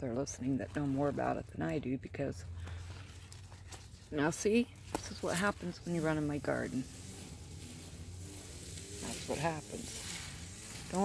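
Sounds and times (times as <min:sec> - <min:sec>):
faint outdoor background noise: 0:00.0 - 0:11.0
low hum: 0:00.0 - 0:11.0.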